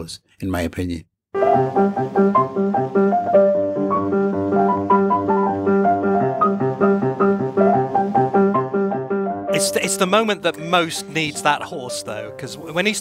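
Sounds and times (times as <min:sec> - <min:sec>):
lively solo piano: 0:01.4 - 0:12.2.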